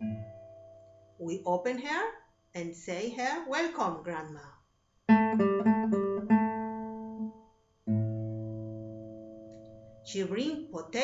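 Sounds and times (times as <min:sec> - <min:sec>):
low guitar chord: 0:00.0 - 0:01.1, 0:05.1 - 0:10.1
acoustic guitar plucked notes: 0:00.0 - 0:01.4, 0:05.1 - 0:11.0.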